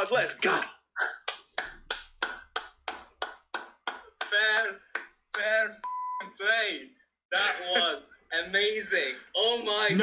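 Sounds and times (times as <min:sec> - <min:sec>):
hand clapping: 0:00.5 - 0:05.7.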